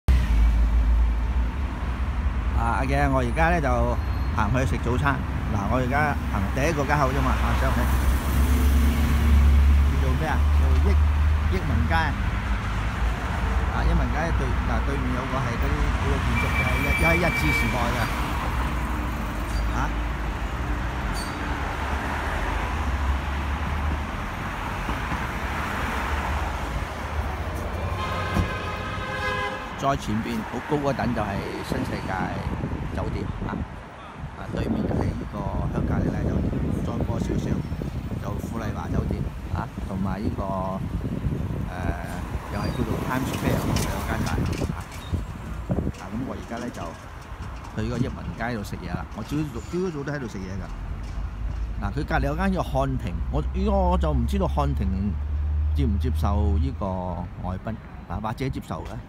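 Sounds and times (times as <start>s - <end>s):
traffic rumble: 0.0s - 59.0s
road noise hiss: 0.1s - 59.0s
steady pitched horn tone: 27.9s - 29.8s.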